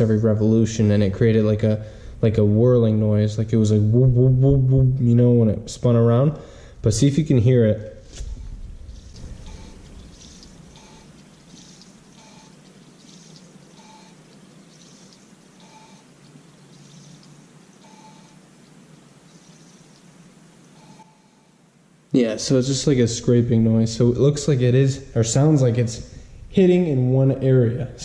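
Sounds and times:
brake drum scraping: 8.0s - 18.3s.

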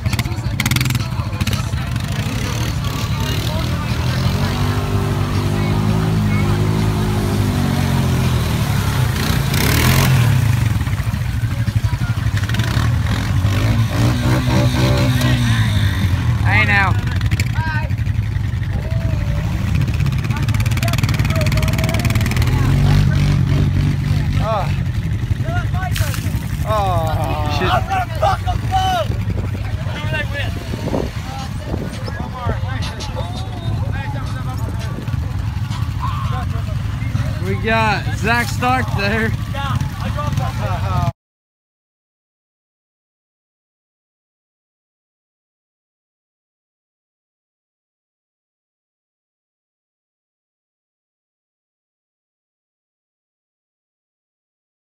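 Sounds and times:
engine idling and revving: 0.0s - 41.1s.

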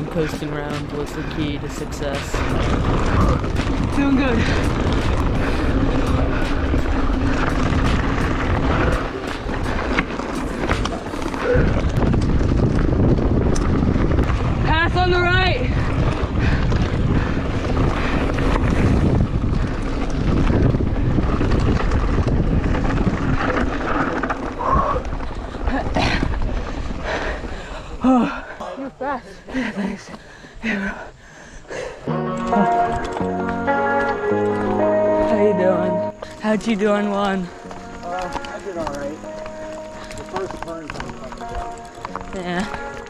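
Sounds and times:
bike tyres rattling on stones: 0.0s - 28.5s, 32.5s - 43.0s
wind buffeting microphone: 0.0s - 43.0s.

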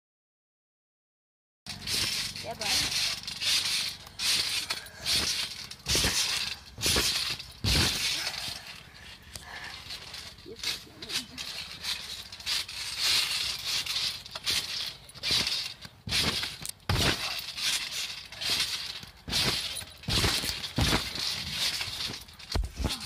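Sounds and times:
trampoline landings: 1.7s - 23.0s.

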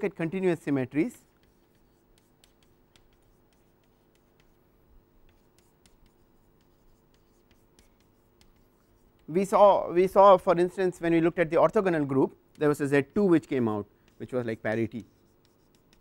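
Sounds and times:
steady low hum: 0.0s - 16.0s
chalk tapping and scratching: 0.6s - 16.0s.

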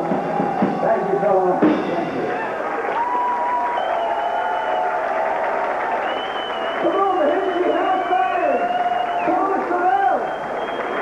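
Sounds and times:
audience applauding and cheering: 0.0s - 11.0s.

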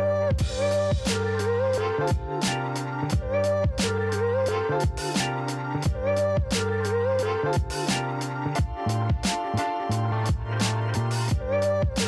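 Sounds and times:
music with bass and steady beat: 0.0s - 12.0s.

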